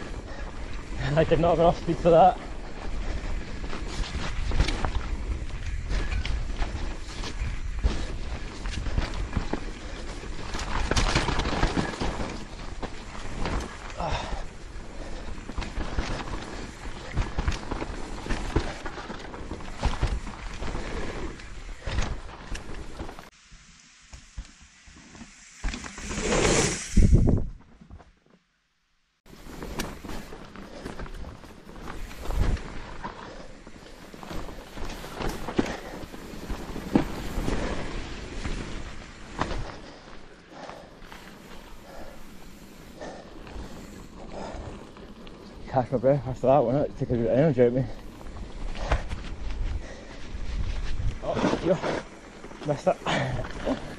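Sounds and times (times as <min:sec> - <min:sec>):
bike tyre noise: 0:00.0 - 0:28.1, 0:29.3 - 0:53.9
wind on microphone: 0:26.1 - 0:27.7.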